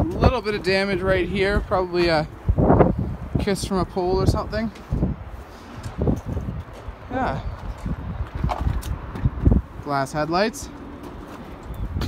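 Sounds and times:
wind buffeting microphone: 0:00.0 - 0:12.0
microphone handling noise: 0:04.4 - 0:09.7
person speaking word: 0:07.1 - 0:07.5.

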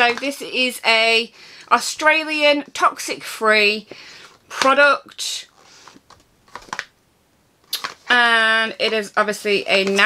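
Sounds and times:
packaging clicks and taps: 0:05.9 - 0:07.0, 0:07.7 - 0:08.1.

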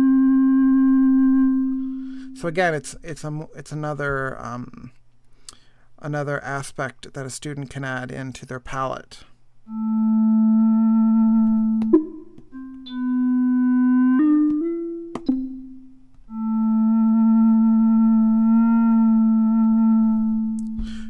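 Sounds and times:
synthesized tone: 0:09.7 - 0:20.7.

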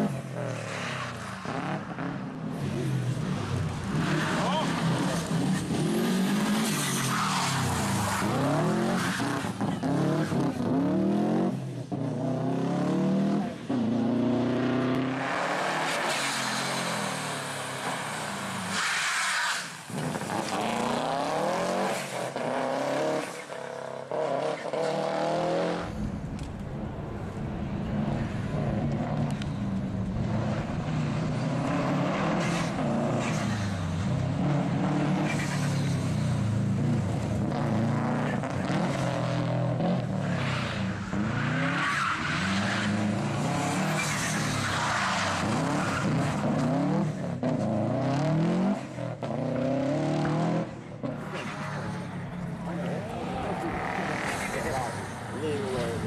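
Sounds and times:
rally car engine revving hard: 0:19.9 - 0:25.9, 0:45.1 - 0:51.6.

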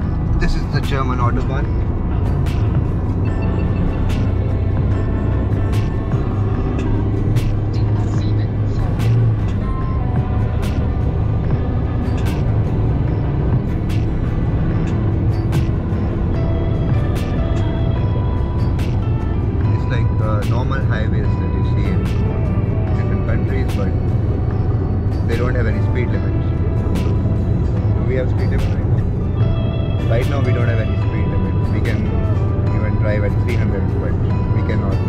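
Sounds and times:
car road noise rumble: 0:00.0 - 0:35.0
background music with a beat: 0:01.7 - 0:19.8, 0:26.3 - 0:30.6.

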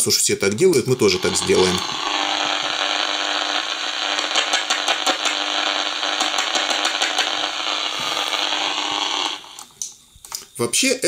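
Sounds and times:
radio hissing and crackling: 0:00.0 - 0:10.0
steady low hum: 0:00.0 - 0:10.4.

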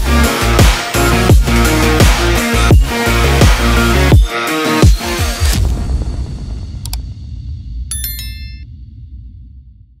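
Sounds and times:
deep bass background music: 0:00.0 - 0:07.6
bell-like ding chime: 0:07.9 - 0:08.7.

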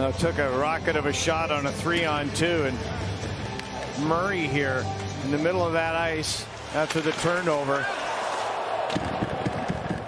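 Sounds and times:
sticks and skates clicking on ice: 0:06.6 - 0:10.0.

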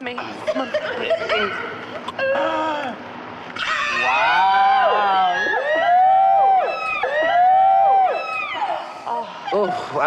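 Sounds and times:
group of people calling ooh: 0:03.6 - 0:09.5.

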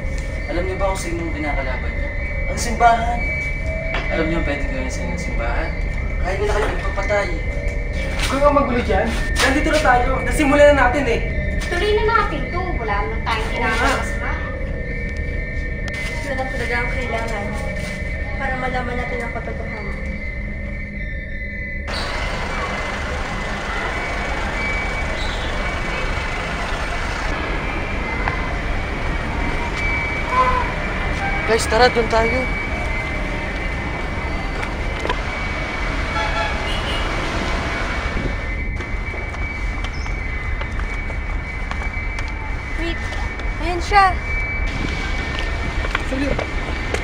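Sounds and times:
thin high whine: 0:00.0 - 0:41.8
street traffic: 0:00.0 - 0:47.0
wind buffeting microphone: 0:37.1 - 0:42.3, 0:44.2 - 0:47.0.

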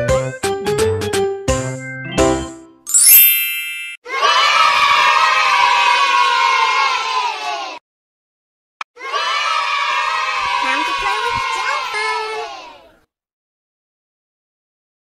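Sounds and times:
bright chime: 0:02.9 - 0:04.0
children cheering and shouting: 0:04.0 - 0:07.8, 0:09.0 - 0:13.1.

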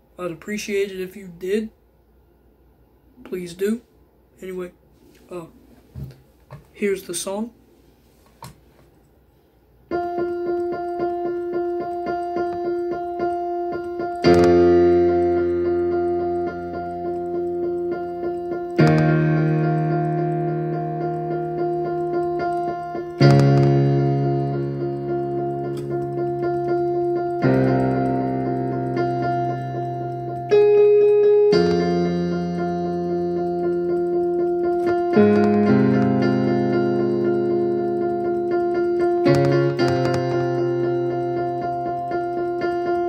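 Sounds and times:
slow keyboard chords: 0:09.9 - 0:43.0.

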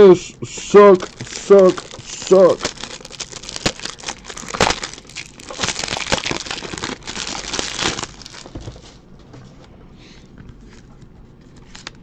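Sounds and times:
plastic wrap crinkling: 0:01.0 - 0:09.0.

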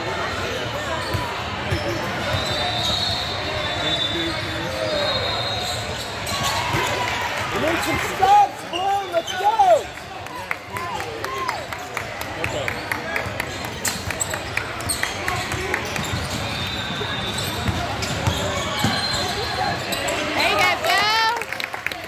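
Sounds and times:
voices echoing in a hall: 0:00.0 - 0:22.0.

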